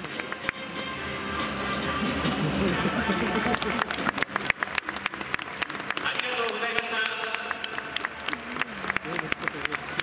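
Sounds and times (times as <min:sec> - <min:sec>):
crowd hand claps: 0:00.0 - 0:00.8, 0:02.7 - 0:10.0
music over public address system: 0:00.0 - 0:10.0.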